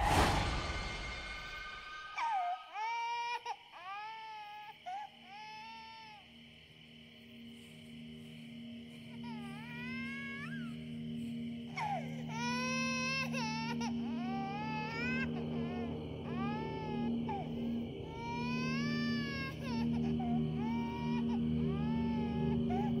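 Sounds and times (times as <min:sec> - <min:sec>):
infant crying: 0:02.2 - 0:06.2, 0:09.2 - 0:10.8, 0:11.8 - 0:23.0
low film score drone: 0:07.2 - 0:23.0.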